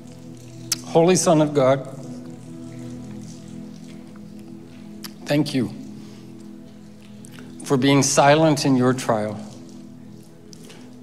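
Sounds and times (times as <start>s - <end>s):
soft sustained chord music: 0.0s - 11.0s.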